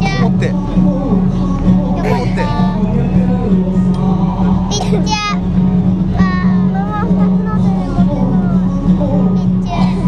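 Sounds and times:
live stage music: 0.0s - 10.0s.

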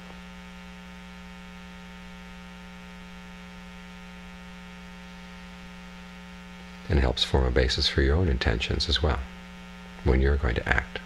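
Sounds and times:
steady electrical hum: 0.0s - 11.0s
man's voice: 6.9s - 9.3s, 10.0s - 11.0s.

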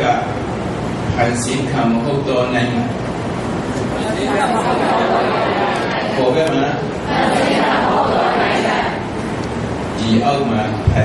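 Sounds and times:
voices talking: 3.9s - 9.2s.

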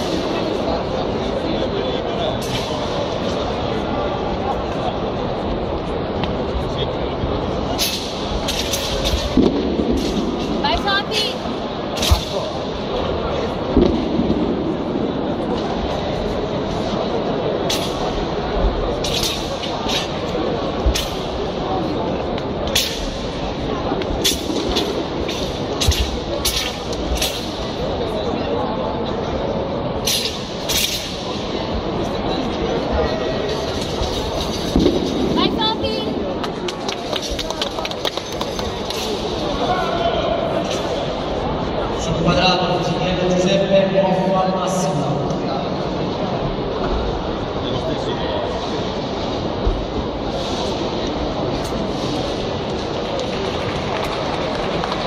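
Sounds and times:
murmur of many people talking: 0.0s - 55.0s
sword snapping and whipping: 19.0s - 20.1s, 21.0s - 21.2s, 22.7s - 23.2s, 24.2s - 27.6s, 30.1s - 31.3s.

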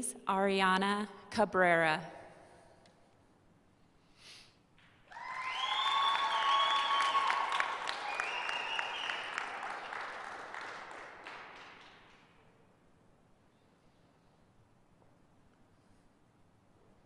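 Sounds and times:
high cheers: 5.1s - 11.6s
audience applauding: 5.1s - 12.5s.

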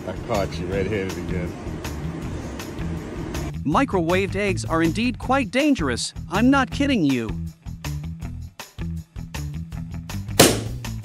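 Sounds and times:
background music with a beat: 6.2s - 11.0s
egg bursting with a pop: 10.4s - 11.0s.

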